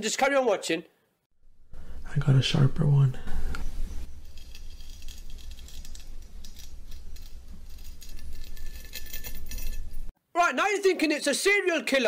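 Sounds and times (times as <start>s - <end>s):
knife scraping through beard: 3.6s - 10.1s.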